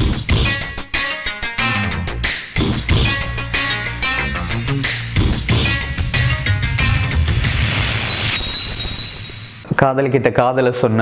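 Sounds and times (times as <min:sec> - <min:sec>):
cymbal crash with high ring: 0:04.9 - 0:09.8.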